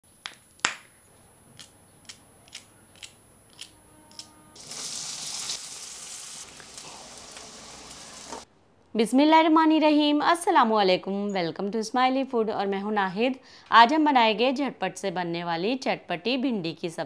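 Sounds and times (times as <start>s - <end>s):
okra sizzling in hot oil: 4.6s - 8.5s.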